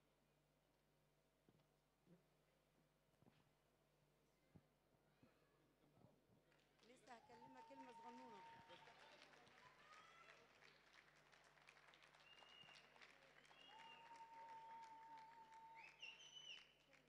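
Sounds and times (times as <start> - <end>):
faint hand clapping: 6.5 - 17.0.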